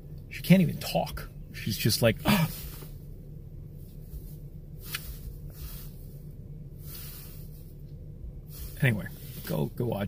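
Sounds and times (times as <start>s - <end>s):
low hum in car cabin: 0.0s - 10.0s
soft breaths through nose: 3.7s - 9.6s.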